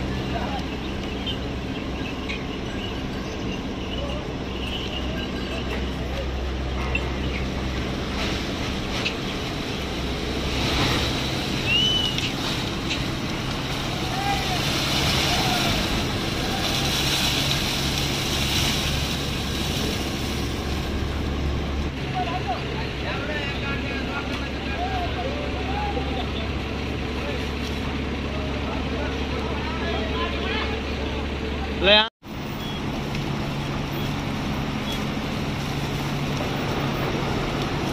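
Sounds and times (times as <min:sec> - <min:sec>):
heavy vehicles idling: 0:00.0 - 0:37.9
voices calling out: 0:00.0 - 0:37.9.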